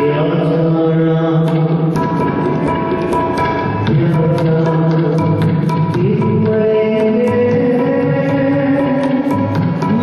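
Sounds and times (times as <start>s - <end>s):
musical accompaniment: 0.0s - 10.0s
drum strokes: 1.4s - 10.0s.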